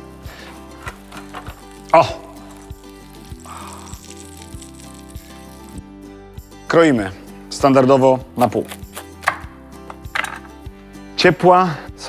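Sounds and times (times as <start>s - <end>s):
background music: 0.0s - 12.0s
cheese sizzling on a grill plate: 1.0s - 5.8s.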